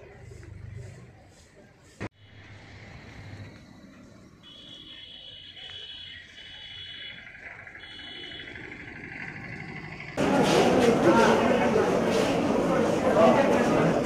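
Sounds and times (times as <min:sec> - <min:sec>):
loud indoor voices and bustle: 0:10.1 - 0:14.0.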